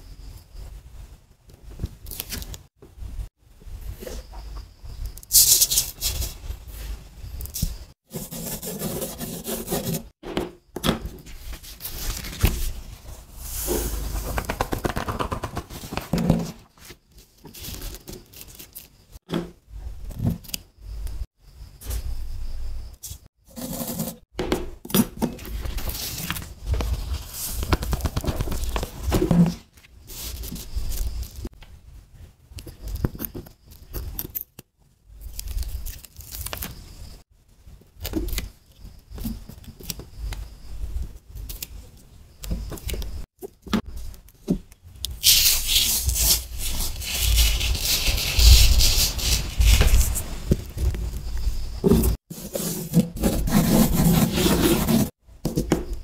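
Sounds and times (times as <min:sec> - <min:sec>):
fingertips rubbing sand on paper: 0:45.2 - 0:50.4, 0:52.3 - 0:55.2.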